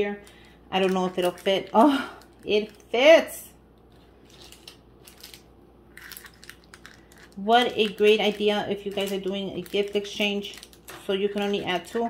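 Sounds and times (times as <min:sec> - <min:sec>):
foil wrappers crinkling: 0:00.2 - 0:03.0, 0:03.9 - 0:12.0
paper envelope rustling: 0:03.9 - 0:12.0.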